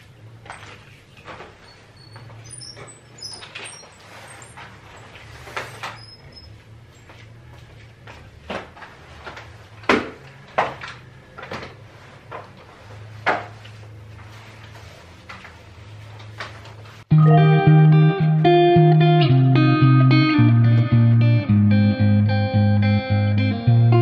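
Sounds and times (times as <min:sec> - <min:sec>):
knocks and bangs of objects handled: 0:08.4 - 0:12.6.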